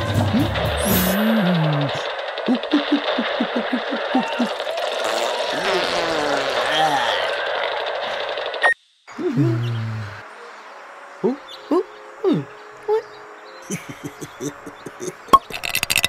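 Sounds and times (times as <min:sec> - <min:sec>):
cartoon voices murmuring: 0:01.1 - 0:07.9, 0:11.2 - 0:13.1, 0:13.7 - 0:15.3.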